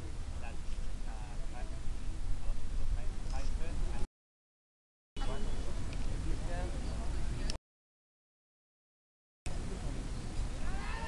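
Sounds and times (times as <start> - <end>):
steady noise with low rumble: 0.0 - 4.1, 5.2 - 7.6, 9.5 - 11.0.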